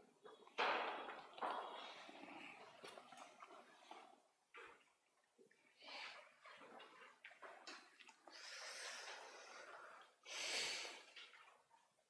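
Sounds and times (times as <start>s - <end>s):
noisy breath: 8.3s - 11.2s.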